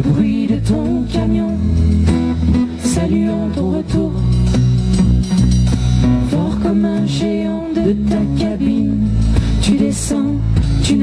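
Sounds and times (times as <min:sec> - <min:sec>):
bass guitar: 0:00.0 - 0:11.0
drums: 0:00.0 - 0:11.0
electric guitar: 0:00.0 - 0:11.0
strummed acoustic guitar: 0:00.0 - 0:11.0.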